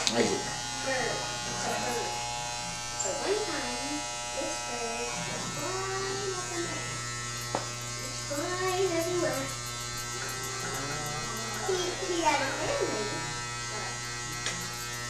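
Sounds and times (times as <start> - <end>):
electric hair clippers buzzing: 0.0 - 15.0.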